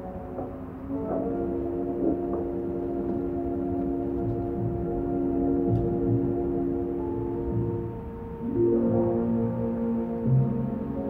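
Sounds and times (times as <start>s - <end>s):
muffled soundtrack music: 0.0s - 11.0s.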